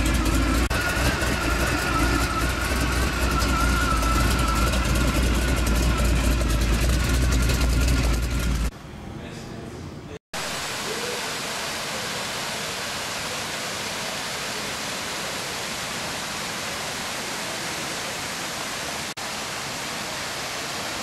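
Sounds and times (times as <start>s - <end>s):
waterfall pouring over boulders: 10.4s - 21.0s.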